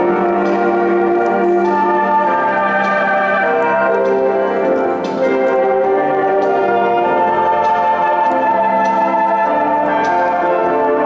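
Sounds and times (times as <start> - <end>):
orchestral music with brass: 0.0 - 11.0.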